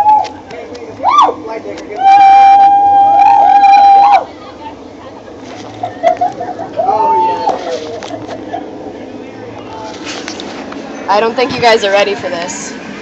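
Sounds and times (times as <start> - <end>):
voices squealing and laughing: 1.0 - 9.1
person screaming high-pitched: 6.8 - 7.6.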